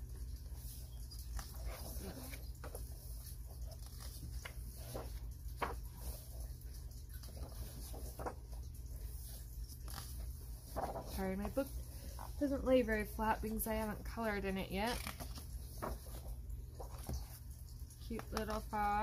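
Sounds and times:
paper pages rustling: 0.1s - 19.0s.

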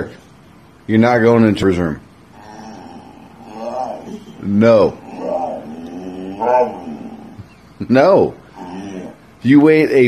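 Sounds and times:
dog grumbling: 2.3s - 7.6s, 8.3s - 9.4s
dog voice-like call: 2.4s - 7.5s, 8.5s - 9.3s.

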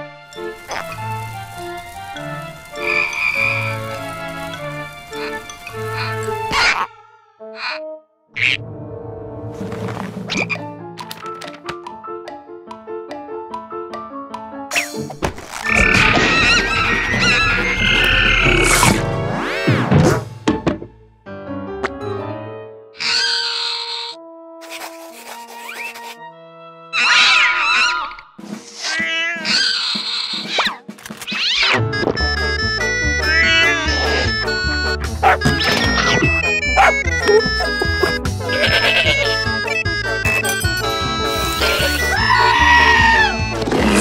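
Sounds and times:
cartoon background music: 0.0s - 44.0s.

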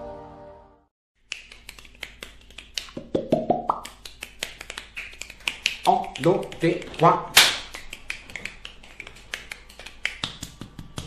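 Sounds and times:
music: 0.0s - 0.9s
sharp hand slaps: 1.3s - 11.0s.

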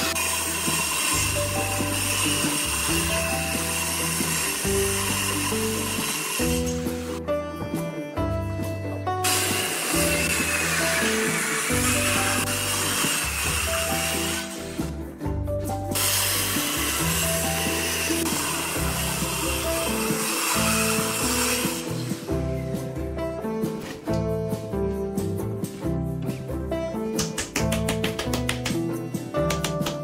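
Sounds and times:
circular saw cutting plywood: 0.0s - 7.3s, 9.2s - 15.0s, 15.9s - 22.4s
guitar music: 0.0s - 30.0s.

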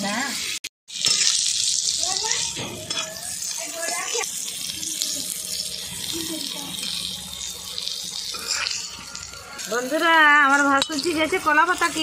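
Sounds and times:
potatoes sizzling in hot oil: 0.0s - 12.0s.

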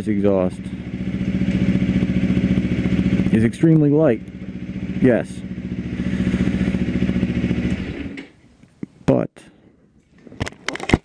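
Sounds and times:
motorcycle engine idling: 0.0s - 8.3s.

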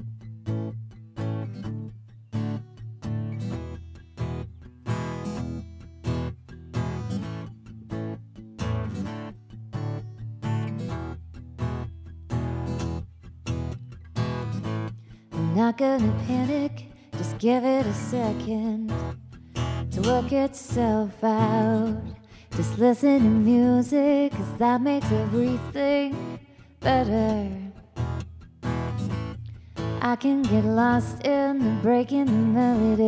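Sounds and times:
woman singing: 15.3s - 27.8s, 29.9s - 33.0s.

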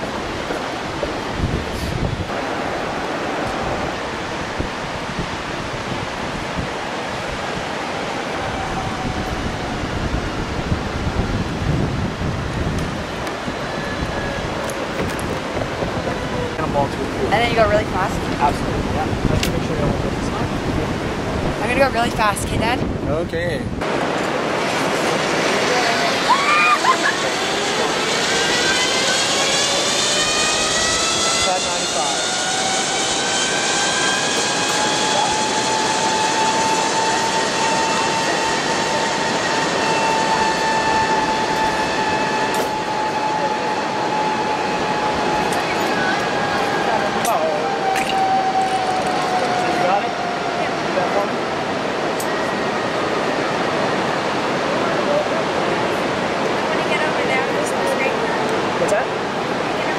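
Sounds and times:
zipline trolley whine: 0.0s - 22.7s, 23.8s - 59.9s
steady rushing noise: 0.0s - 59.9s.

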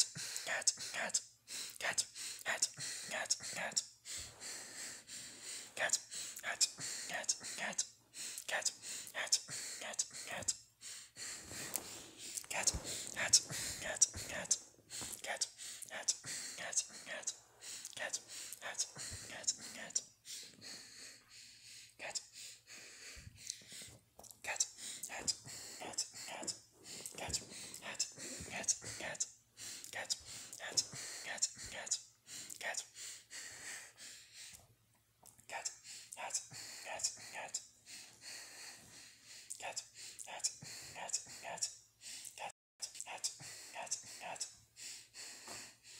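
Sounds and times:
person whispering: 0.0s - 4.4s, 5.4s - 10.6s, 11.3s - 20.8s, 22.0s - 22.4s, 24.2s - 33.0s, 35.3s - 37.7s, 39.5s - 44.6s.

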